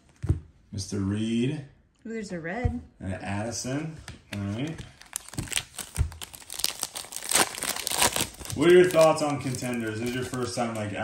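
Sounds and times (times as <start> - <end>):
foil wrapper crinkling and tearing: 4.6 - 11.0.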